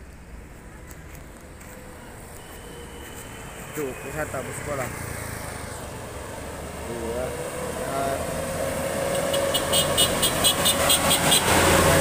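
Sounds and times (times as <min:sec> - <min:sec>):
bus engine passing: 0:00.0 - 0:12.0
road traffic: 0:00.0 - 0:12.0.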